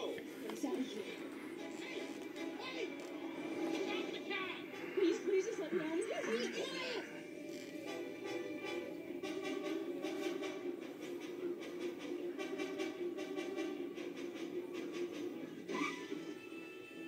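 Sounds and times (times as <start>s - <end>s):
tense drama score: 0.0s - 17.0s.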